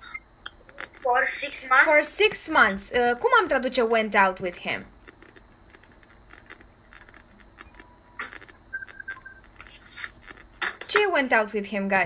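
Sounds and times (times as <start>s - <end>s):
faint clicks and taps: 4.4s - 11.1s.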